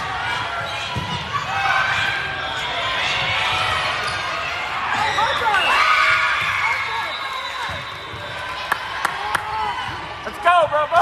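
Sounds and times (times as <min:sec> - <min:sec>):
voices calling and chattering: 0:00.0 - 0:11.0.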